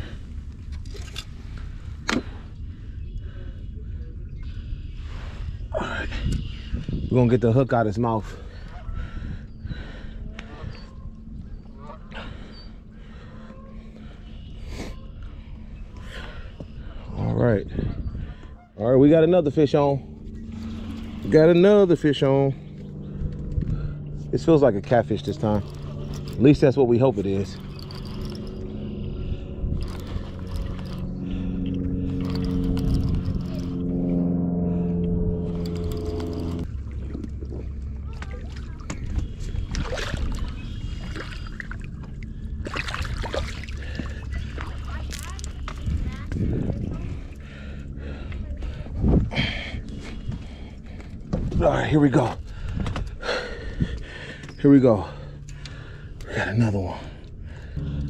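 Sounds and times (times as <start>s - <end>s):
low rumble: 0.0s - 58.0s
fishing reel gears whirring: 20.2s - 23.6s, 24.4s - 34.1s, 35.2s - 37.4s.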